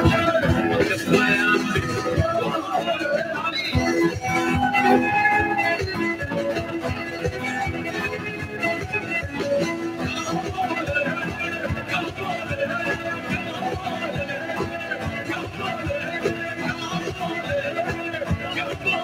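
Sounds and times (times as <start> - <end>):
acoustic guitar: 0.0 - 19.0.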